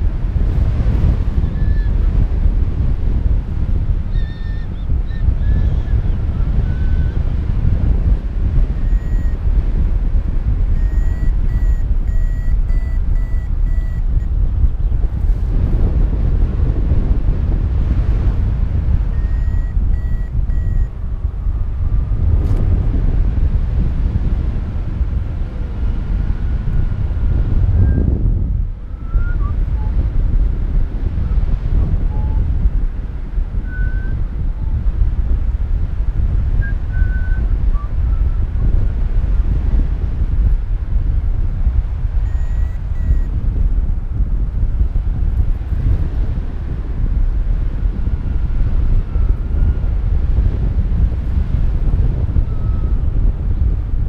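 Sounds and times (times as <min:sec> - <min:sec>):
airflow buffeting microphone: 0:00.0 - 0:54.0
variometer short beeps: 0:08.7 - 0:09.5, 0:10.7 - 0:14.4, 0:19.0 - 0:21.0, 0:42.2 - 0:43.4, 0:52.4 - 0:53.0.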